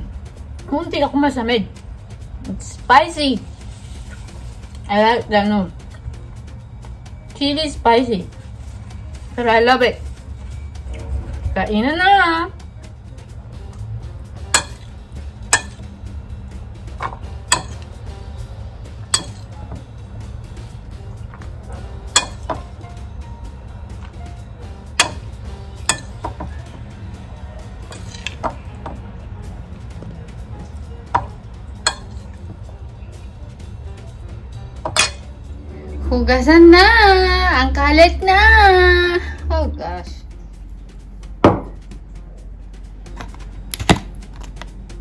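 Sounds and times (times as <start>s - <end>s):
metal spoon clinking on bowl: 15.5s - 15.8s, 17.5s - 17.9s, 19.1s - 19.5s, 22.1s - 22.6s, 25.8s - 26.3s, 31.8s - 32.3s.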